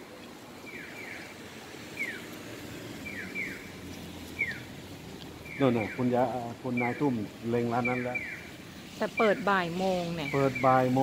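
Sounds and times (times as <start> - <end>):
street traffic hum: 0.0 - 11.0
crossing signal bird-like chirps: 6.7 - 7.0.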